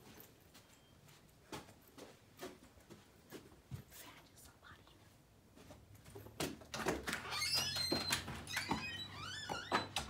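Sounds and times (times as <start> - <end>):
faint footsteps: 0.0 - 10.0
person whispering: 3.8 - 5.2.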